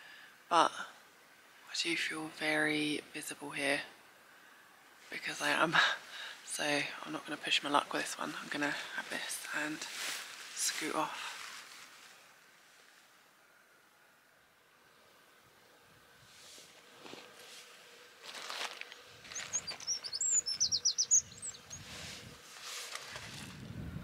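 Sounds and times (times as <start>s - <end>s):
soft rustles: 9.0s - 13.1s, 16.2s - 20.3s, 21.7s - 23.7s
small bird chirping: 19.3s - 21.9s.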